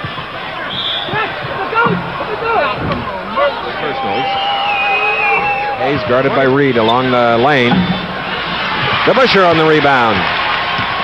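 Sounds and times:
din of many voices: 0.0 - 10.1
crowd calls and shouts: 0.0 - 11.0.

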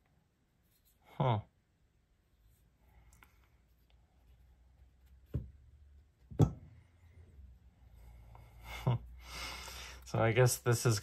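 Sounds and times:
knife knocking on mat: 6.3 - 6.7.

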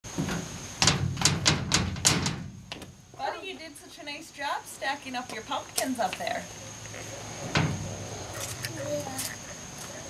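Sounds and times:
feet stamping on metal door: 0.1 - 2.9.

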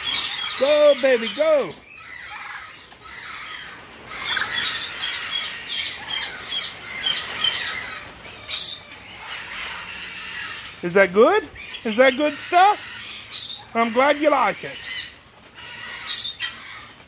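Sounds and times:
birds chirping and squawking: 0.0 - 17.0.

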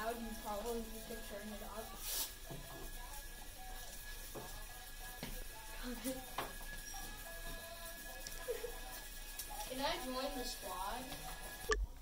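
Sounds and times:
faint music from small speaker: 0.0 - 12.0.

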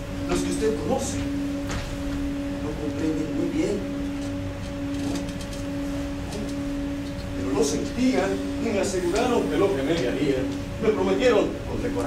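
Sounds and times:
faint higher tone: 0.0 - 12.0
low steady hum: 0.0 - 12.0.

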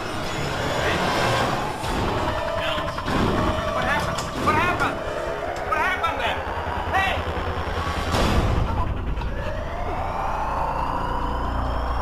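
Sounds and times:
steady low rumble: 1.5 - 12.0.

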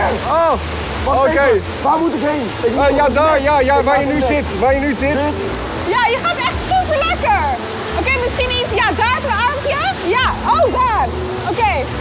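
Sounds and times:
water rushing: 0.0 - 12.0.

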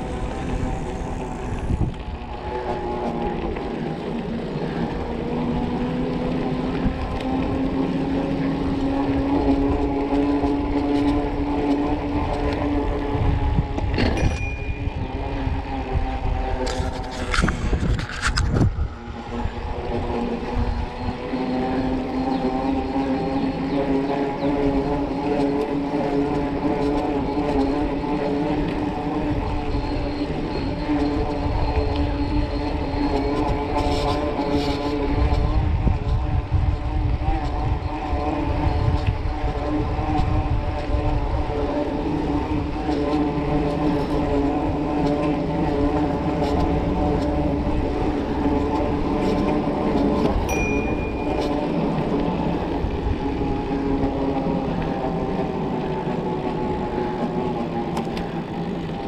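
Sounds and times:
bicycle rolling hum: 0.0 - 59.0
wind rumbling on microphone: 0.0 - 59.0.

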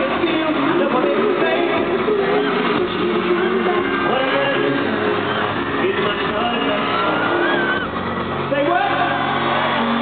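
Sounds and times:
live concert music: 0.0 - 10.0.

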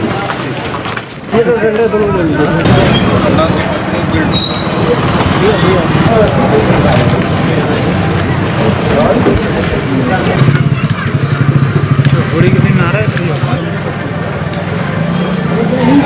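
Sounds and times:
people talking: 0.0 - 16.0
vehicle engine running: 5.0 - 16.0.

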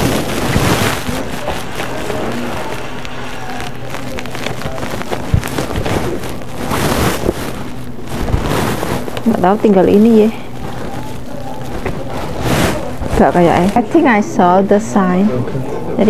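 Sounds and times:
rustling and handling noise: 0.0 - 15.2
faint background music: 0.0 - 16.0.

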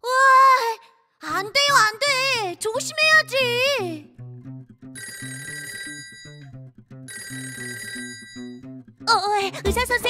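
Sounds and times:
telephone ringing: 5.0 - 6.5, 7.1 - 8.6
children's music with plucked bass: 9.1 - 10.0.

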